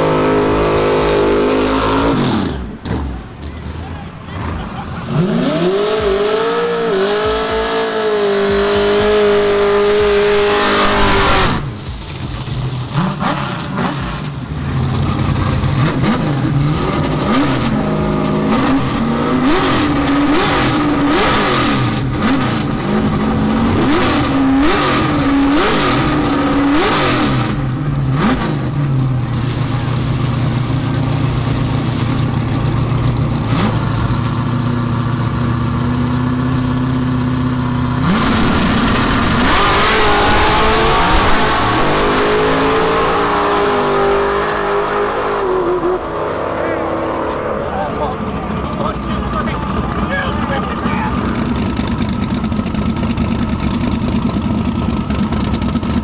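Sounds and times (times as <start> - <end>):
drag car engine revving: 0.0 - 56.0.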